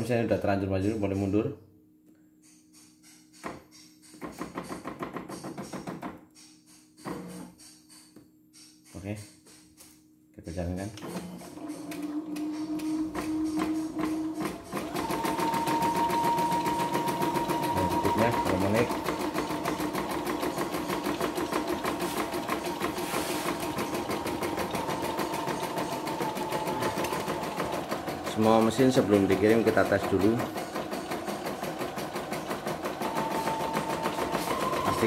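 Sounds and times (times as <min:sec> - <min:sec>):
embroidery machine needle stitching: 0:11.0 - 0:35.0.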